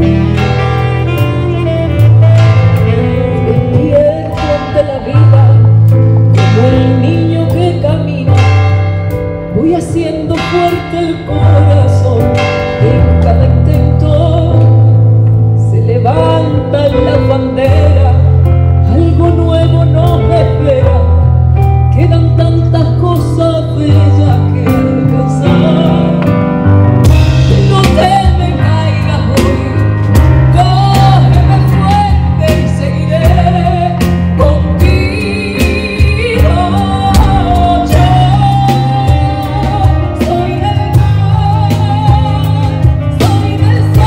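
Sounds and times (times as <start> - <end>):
person singing: 0.0 - 8.8, 9.5 - 15.0, 15.6 - 21.2, 22.0 - 26.4, 27.3 - 44.0
drum kit: 0.0 - 44.0
keyboard chords: 0.0 - 44.0
low bass notes: 0.0 - 44.0
drum hits: 26.2 - 28.7, 34.9 - 41.3.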